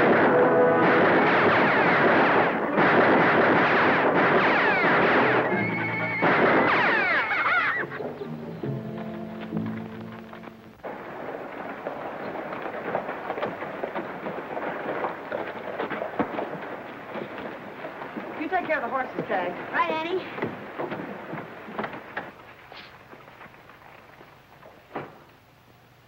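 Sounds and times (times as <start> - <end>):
horses whinnying: 0.0 - 8.6
hooves pounding: 0.0 - 25.7.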